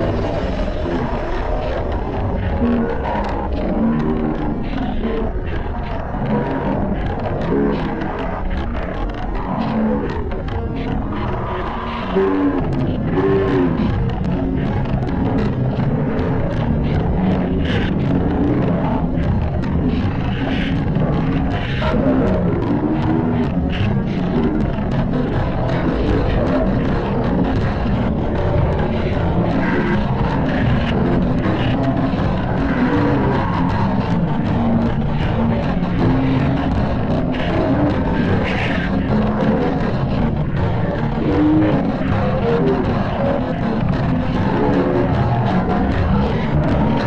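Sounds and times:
loud distorted music: 0:00.0 - 0:47.0.

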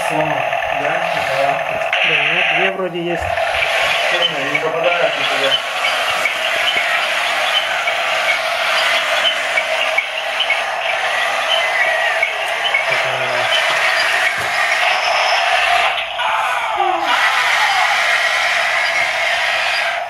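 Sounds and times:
toy tank engine sound effects: 0:00.0 - 0:20.0.

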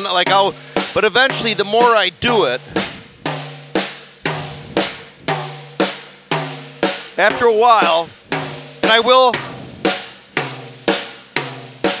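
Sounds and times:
snare drum strokes: 0:00.0 - 0:12.0.

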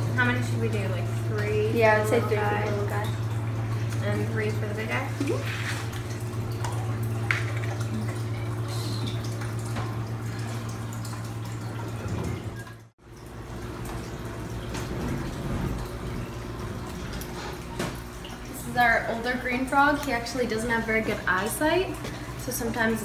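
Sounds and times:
water trickling and dripping: 0:00.0 - 0:23.0.

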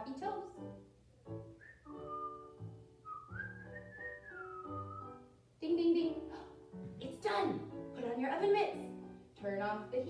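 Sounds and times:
soft background music: 0:00.0 - 0:10.0
person whistling a tune: 0:01.6 - 0:05.2.

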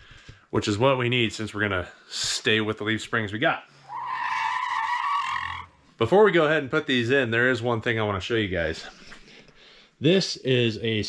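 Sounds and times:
tire screech: 0:03.8 - 0:05.8.

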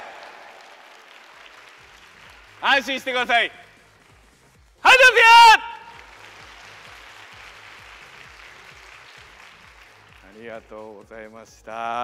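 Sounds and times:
audience applauding: 0:00.0 - 0:02.8, 0:05.8 - 0:10.4.

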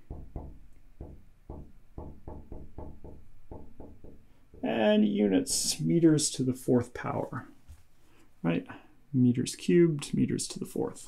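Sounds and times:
marker tapping on glass: 0:00.0 - 0:04.7.

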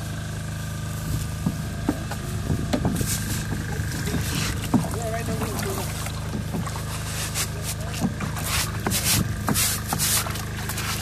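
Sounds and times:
low motor hum: 0:00.0 - 0:11.0
water sloshing in plastic tub: 0:01.2 - 0:11.0
water running off box: 0:02.8 - 0:11.0.

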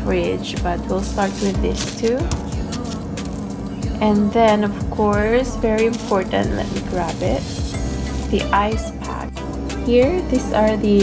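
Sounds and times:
woman speaking: 0:00.0 - 0:02.3, 0:04.0 - 0:07.6, 0:08.3 - 0:11.0
background music held tone: 0:00.0 - 0:11.0.

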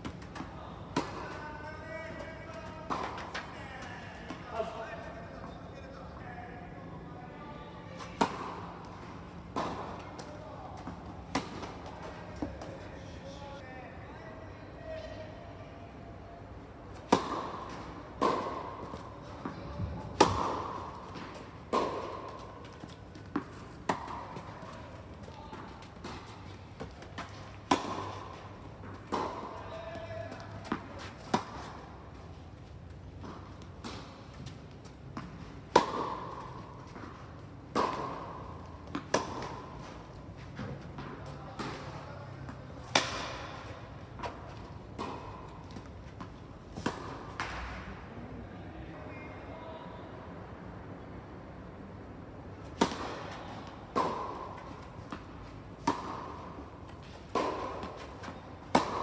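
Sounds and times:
tennis balls struck by rackets: 0:00.0 - 0:01.5, 0:02.1 - 0:04.7, 0:08.0 - 0:12.8, 0:16.9 - 0:32.2, 0:33.1 - 0:48.0, 0:52.5 - 0:59.0
tennis balls bouncing on court: 0:00.0 - 0:04.7, 0:08.0 - 0:12.9, 0:16.9 - 0:48.0, 0:52.6 - 0:59.0.

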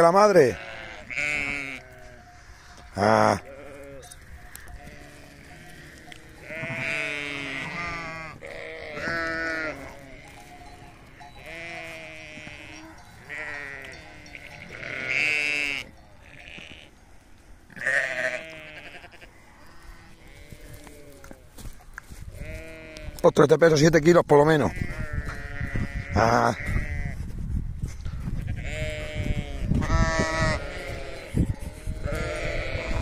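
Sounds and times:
sheep and lamb bleating: 0:00.0 - 0:17.0, 0:17.7 - 0:23.8, 0:24.4 - 0:27.3, 0:28.1 - 0:33.0.

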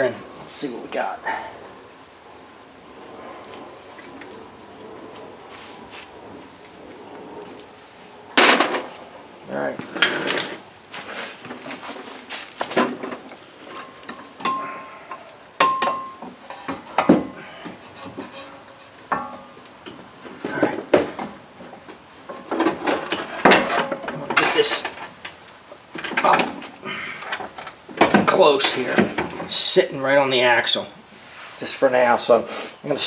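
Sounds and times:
metallic clanks and scrapes: 0:11.5 - 0:20.8, 0:22.3 - 0:25.1.

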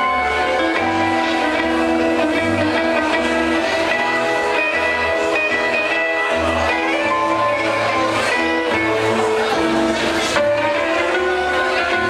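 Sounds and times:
band playing instrumental: 0:00.0 - 0:12.0
bass line: 0:00.0 - 0:12.0.

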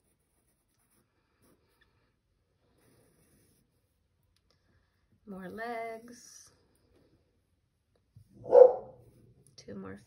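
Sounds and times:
short loud bark: 0:08.4 - 0:08.9.

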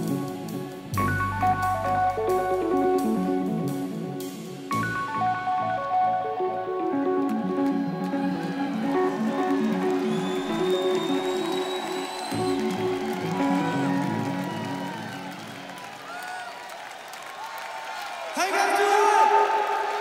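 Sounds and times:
rock band playing chords: 0:00.0 - 0:15.8
crowd cheering: 0:06.8 - 0:20.0.

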